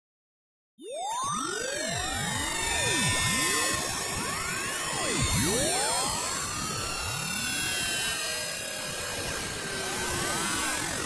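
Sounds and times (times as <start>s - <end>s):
electronic sweeping tones: 0.9s - 7.3s.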